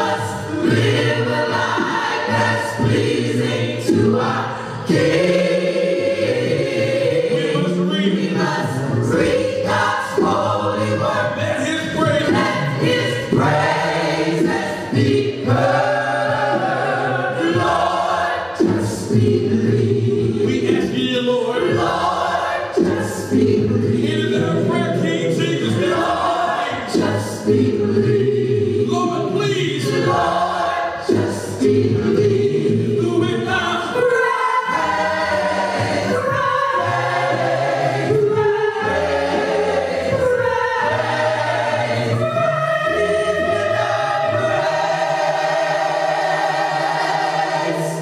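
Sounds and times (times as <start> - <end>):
choir singing a hymn: 0.0 - 48.0.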